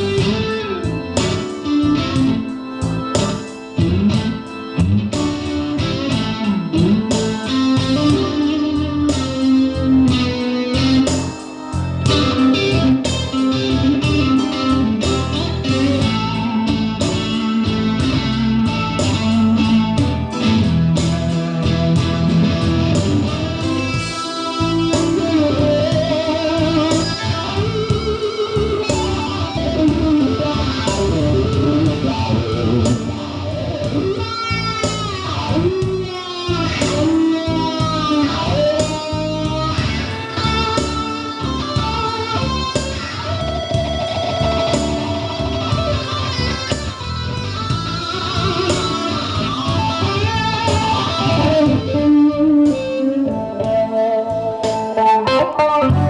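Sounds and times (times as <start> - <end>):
electric guitar playing: 0.0 - 56.0
steady beat: 0.0 - 56.0.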